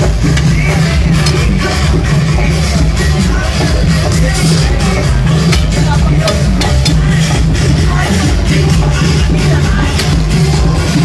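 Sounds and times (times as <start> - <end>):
crowd chatter: 0.0 - 11.0
electronic dance music: 0.0 - 11.0.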